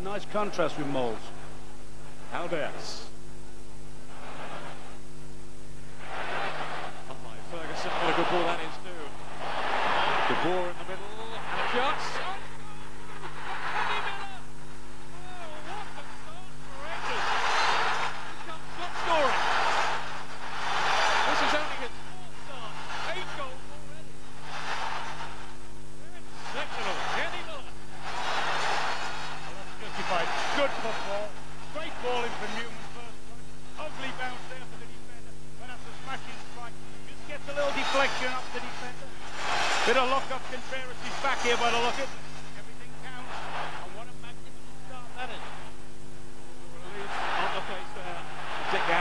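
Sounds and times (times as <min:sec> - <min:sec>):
low electrical hum: 0:00.0 - 0:49.0
stadium crowd cheering and singing: 0:26.4 - 0:31.2.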